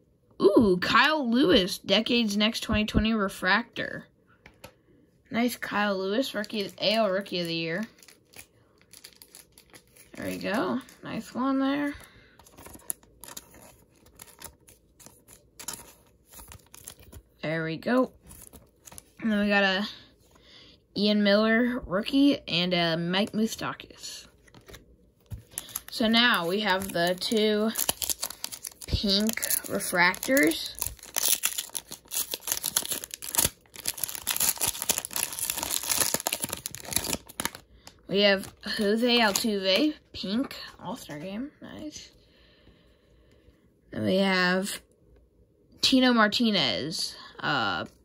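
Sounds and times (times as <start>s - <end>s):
trading cards rustling: 5.7s - 17.4s, 18.0s - 19.3s, 24.3s - 39.9s
wrapper crinkling and tearing: 6.2s - 17.3s, 18.2s - 19.2s, 24.4s - 39.6s.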